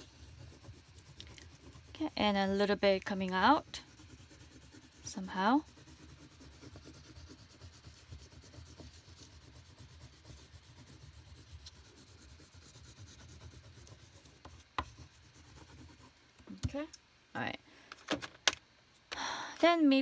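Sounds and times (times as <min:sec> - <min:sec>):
oil pastel rubbing on paper: 0:00.0 - 0:16.2.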